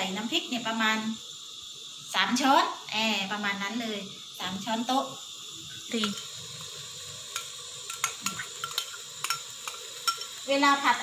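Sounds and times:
paste sizzling in oil: 0:00.0 - 0:11.0.

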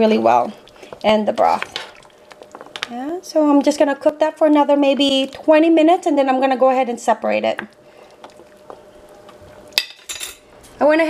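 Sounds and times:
broth bubbling in a pot: 0:00.0 - 0:10.0
thin steady hum: 0:00.0 - 0:11.0.

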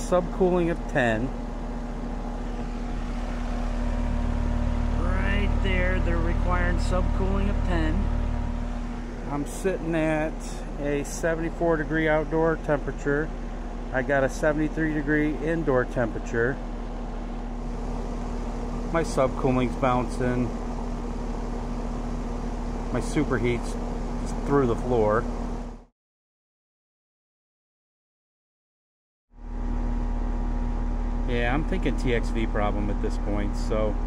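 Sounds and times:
constant tone: 0:00.0 - 0:25.8, 0:29.5 - 0:34.0
compressor hum: 0:00.0 - 0:25.9, 0:29.4 - 0:34.0
condenser fan rush: 0:00.0 - 0:25.9, 0:29.4 - 0:34.0.

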